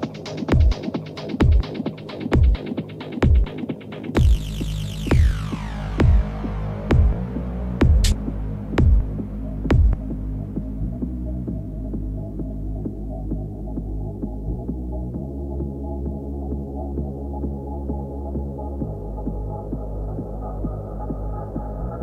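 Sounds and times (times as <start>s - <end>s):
low bass drone: 4.2s - 22.0s.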